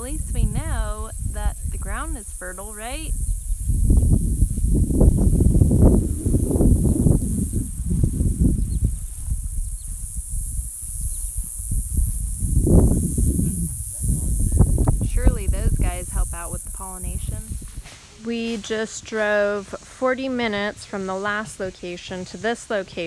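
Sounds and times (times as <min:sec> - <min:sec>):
wind buffeting microphone: 0:00.0 - 0:18.0
insects hissing: 0:00.0 - 0:19.3.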